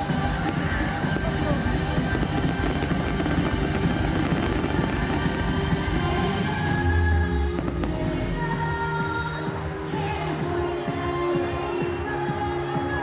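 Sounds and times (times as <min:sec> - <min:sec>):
low rumble of fireworks bursting: 0:00.0 - 0:08.9
music over outdoor loudspeakers: 0:00.0 - 0:13.0.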